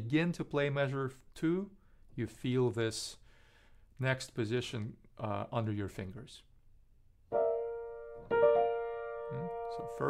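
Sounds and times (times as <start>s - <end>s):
piano chords ringing: 7.3s - 10.0s.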